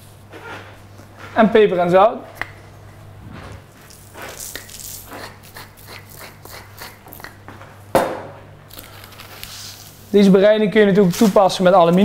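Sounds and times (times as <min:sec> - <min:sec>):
low steady hum: 0:00.0 - 0:12.0
pepper mill grinding: 0:03.9 - 0:07.3.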